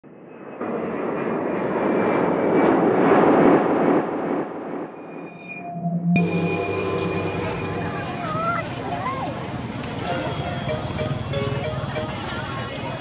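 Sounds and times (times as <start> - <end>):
airplane engine passing by: 6.2 - 13.0.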